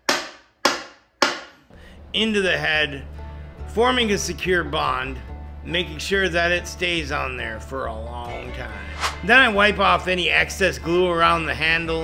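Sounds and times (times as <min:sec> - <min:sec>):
wooden mallet knocks: 0:00.0 - 0:01.6.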